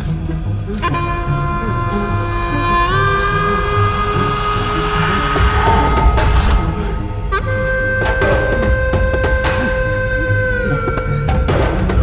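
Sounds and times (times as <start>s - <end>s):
low rhythmic pulse: 0.0s - 12.0s
held high note: 0.8s - 10.0s.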